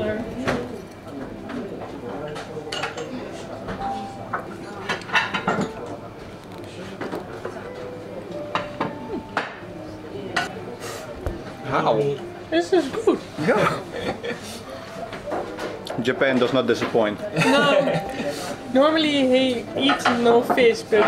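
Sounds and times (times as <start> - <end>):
murmur of voices: 0.0 - 21.0
chopsticks and dishes clinking: 1.5 - 6.2, 19.8 - 21.0.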